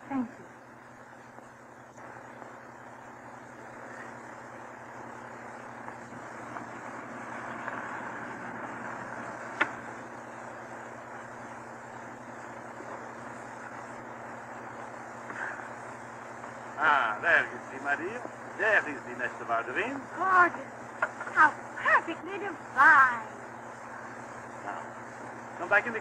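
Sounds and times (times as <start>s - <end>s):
record surface hiss and hum: 0.0s - 26.0s
disc click: 9.4s - 10.0s.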